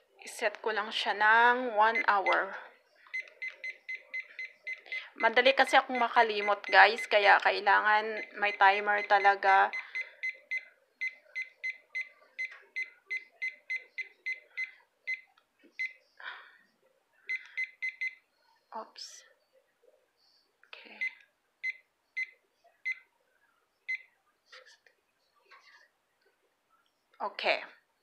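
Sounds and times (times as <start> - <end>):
kitchen timer beeps: 2.0 - 2.4, 3.1 - 7.2, 8.2 - 15.2, 17.3 - 18.2.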